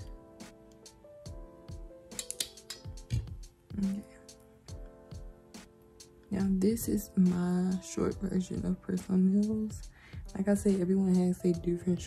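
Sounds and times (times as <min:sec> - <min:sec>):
nail cutter clicking: 0:02.1 - 0:03.3.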